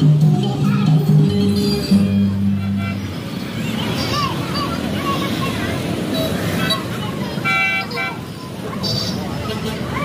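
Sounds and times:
busy street noise: 0.0 - 10.0
voices: 0.0 - 10.0.

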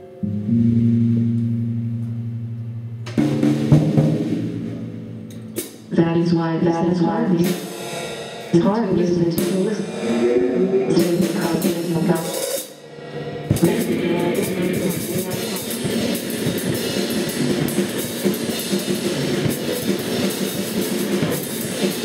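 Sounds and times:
cymbal crashes: 0.0 - 5.9, 7.4 - 8.6, 9.3 - 22.0
drum kit: 0.0 - 6.0, 7.2 - 22.0
electric guitar: 0.0 - 6.0, 9.4 - 22.0
held low note ringing: 0.0 - 6.0, 9.4 - 12.1
keyboard: 0.0 - 20.2.

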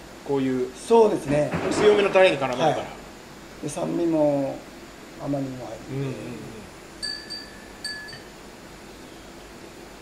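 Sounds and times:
tableware clinks: 7.0 - 8.3.

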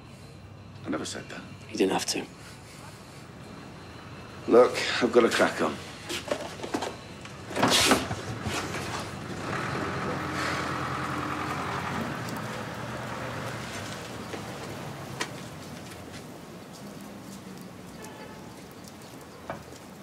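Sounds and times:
road vehicle passing: 0.0 - 20.0.

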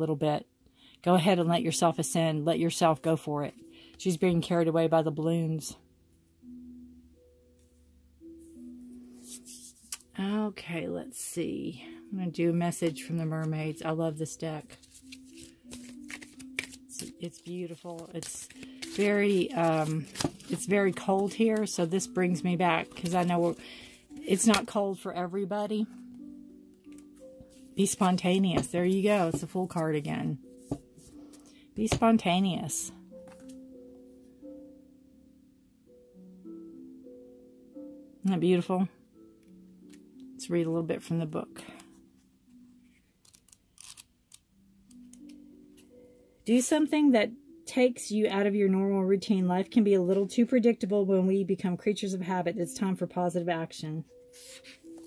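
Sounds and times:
pages rustling and turning: 9.2 - 10.1, 14.6 - 24.8, 26.9 - 32.1, 33.3 - 33.6, 43.2 - 45.9, 54.3 - 55.0
cards being shuffled: 14.6 - 24.7, 26.9 - 29.9, 30.6 - 32.1, 43.2 - 44.4, 54.4 - 55.0.

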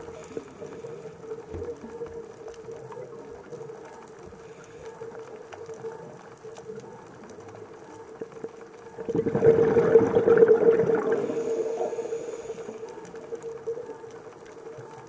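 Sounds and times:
faint clicks: 0.0 - 9.2, 10.3 - 15.0
steady low hum underwater: 0.0 - 15.0.

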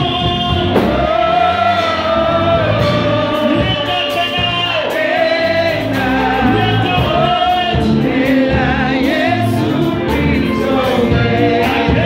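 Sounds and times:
drums: 0.0 - 12.0
group of singers singing: 0.0 - 12.0
keyboard: 0.0 - 12.0
steady bass: 0.0 - 12.0.

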